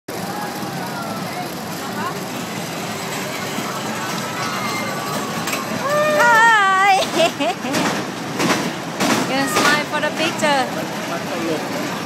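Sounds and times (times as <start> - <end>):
faint voices: 0.1 - 7.0
crowd noise: 0.1 - 12.0
roller coaster ride noise: 0.1 - 12.0
loud high-pitched yell: 4.3 - 6.7.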